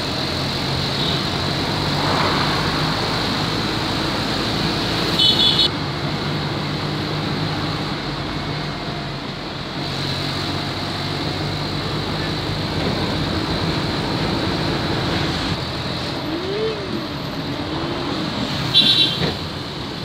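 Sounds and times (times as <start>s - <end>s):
wind and road noise: 0.0s - 20.0s.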